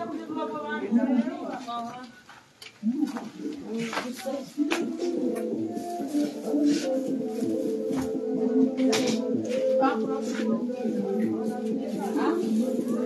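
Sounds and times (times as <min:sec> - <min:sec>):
voices singing held notes: 0:03.5 - 0:13.0.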